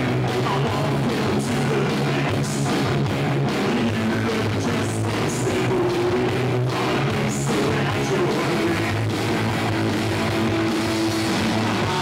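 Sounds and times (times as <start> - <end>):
punk rock band playing live: 0.0 - 12.0.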